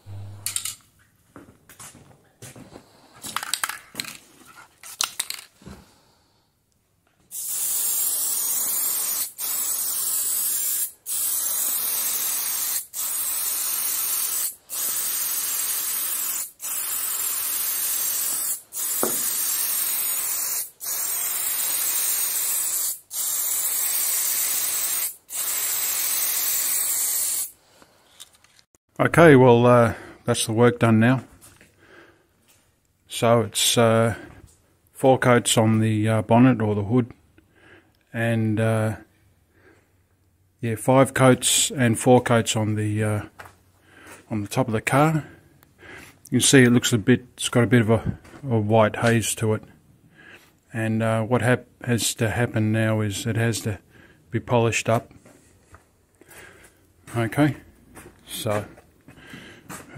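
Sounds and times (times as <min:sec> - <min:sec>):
aerosol spray can hissing: 0:07.3 - 0:27.6.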